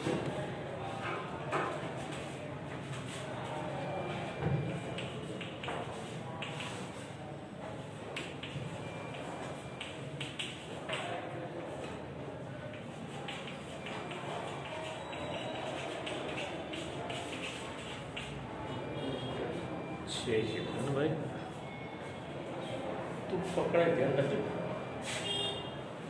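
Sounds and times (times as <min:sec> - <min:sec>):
murmur of the room: 0:00.0 - 0:26.0
chalk tapping on a blackboard: 0:05.0 - 0:06.9, 0:12.7 - 0:18.5.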